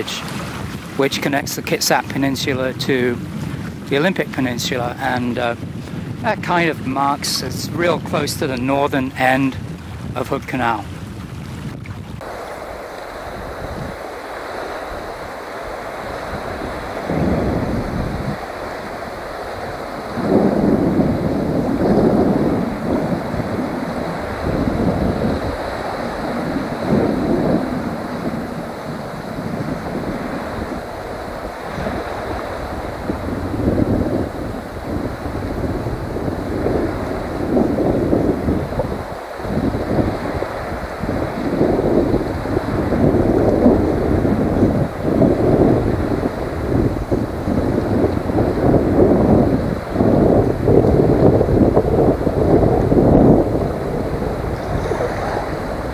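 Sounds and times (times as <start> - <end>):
small waves lapping: 0.0 - 2.2, 3.2 - 4.5, 8.0 - 55.9
wind buffeting microphone: 0.0 - 55.9.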